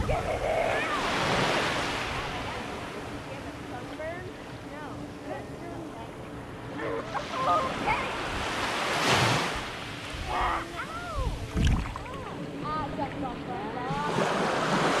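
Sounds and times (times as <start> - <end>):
small waves lapping on sand: 0.0 - 15.0.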